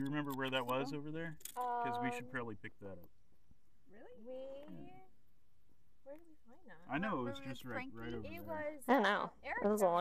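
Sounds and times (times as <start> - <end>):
person speaking: 0.0 - 3.1, 6.9 - 9.1
quiet talk: 0.0 - 3.1.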